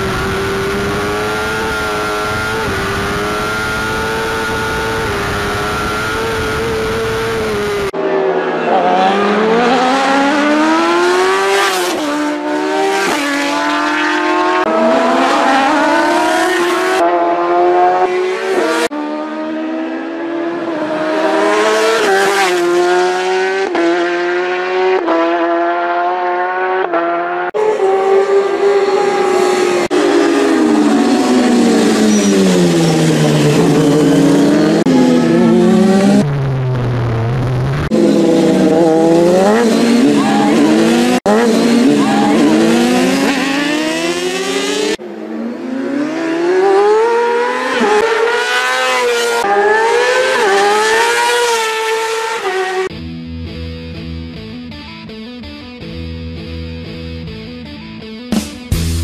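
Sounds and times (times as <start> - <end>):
racing motorcycles passing at high revs: 0.0 - 36.3, 37.8 - 52.9.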